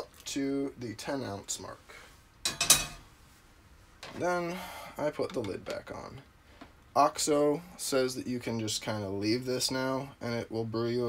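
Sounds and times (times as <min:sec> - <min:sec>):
saucepan clanking on stove grate: 0:02.4 - 0:03.1.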